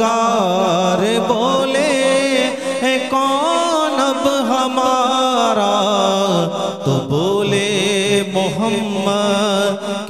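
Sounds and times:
man singing unaccompanied: 0.0s - 10.0s.

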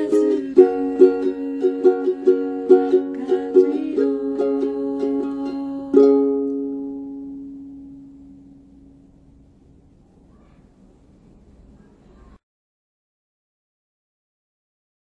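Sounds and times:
ukulele playing: 0.0s - 9.2s.

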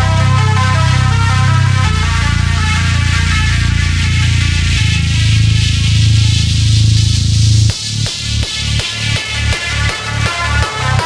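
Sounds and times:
buzzing low synth bass tone: 0.0s - 11.0s.

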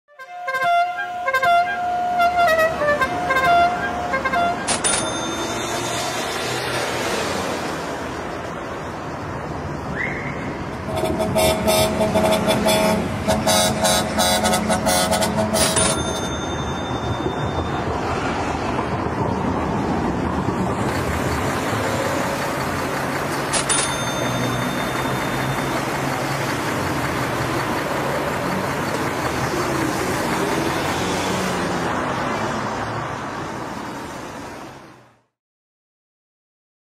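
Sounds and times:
car horns honking: 0.1s - 6.7s, 9.9s - 17.9s
passing vehicles rumble: 0.3s - 35.3s.

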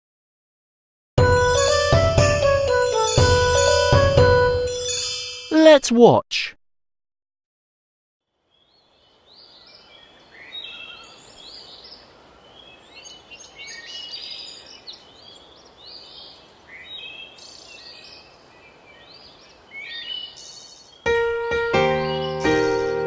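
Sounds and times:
faint outdoor hiss: 8.2s - 23.0s
birds chirping: 8.5s - 21.2s, 21.8s - 23.0s.

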